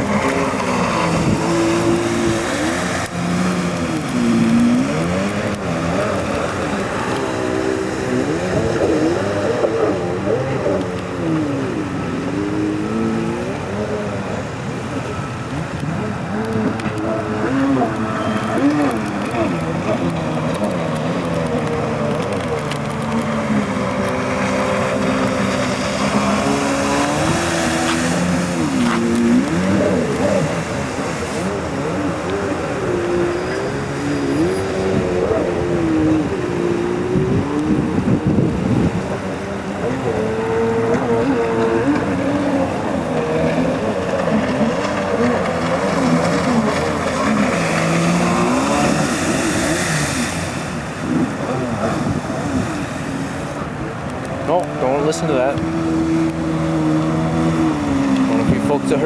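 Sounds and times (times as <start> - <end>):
jet ski engine revving: 0.0 - 59.0.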